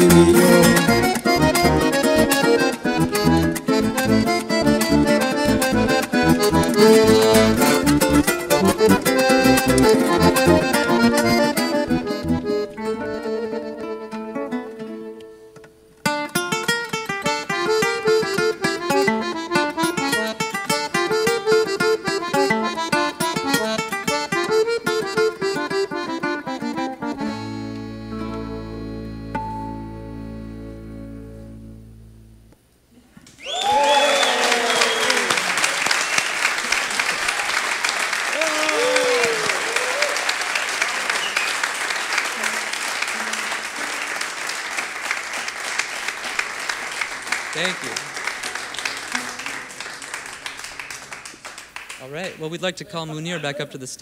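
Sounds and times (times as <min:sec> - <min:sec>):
bass: 0:00.0 - 0:13.9, 0:26.9 - 0:32.7
strummed string instrument chords: 0:00.0 - 0:15.3, 0:17.2 - 0:32.6
accordion: 0:00.0 - 0:32.6, 0:40.2 - 0:51.4
audience applause and cheering: 0:33.3 - 0:52.0.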